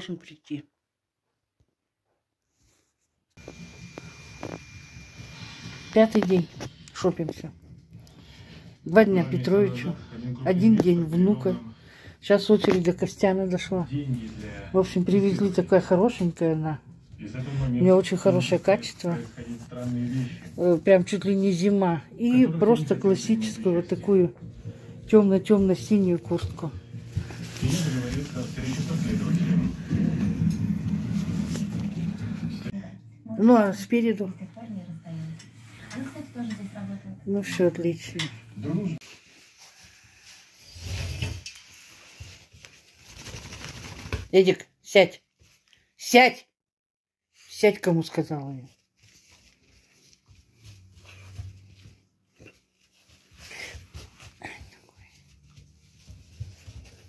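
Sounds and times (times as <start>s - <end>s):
soft rustles on a rug: 2.0s - 4.6s, 24.4s - 32.4s, 39.0s - 43.2s, 48.1s - 57.0s
jacket rustling: 25.9s - 29.4s.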